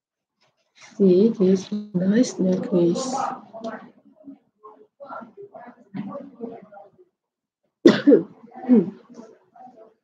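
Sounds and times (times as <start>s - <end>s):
woman coughing: 7.9s - 8.4s.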